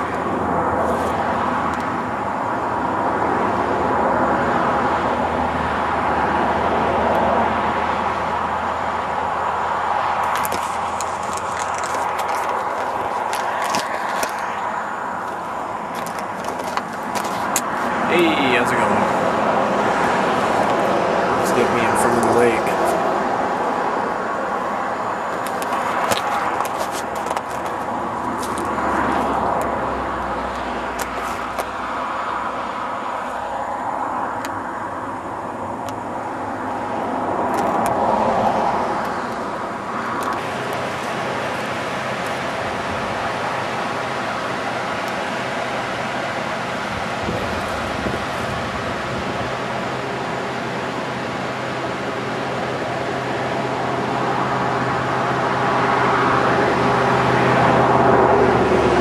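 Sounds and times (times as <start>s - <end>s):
car road and engine noise: 0.0s - 59.0s.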